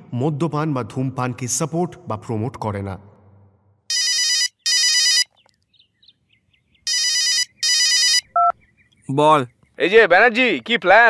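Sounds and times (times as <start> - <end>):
telephone ringing: 3.9 - 5.3, 6.9 - 8.5.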